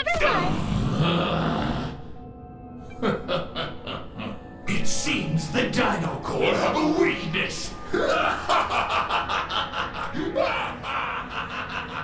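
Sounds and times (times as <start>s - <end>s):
cartoon evil laugh: 8.0s - 12.0s.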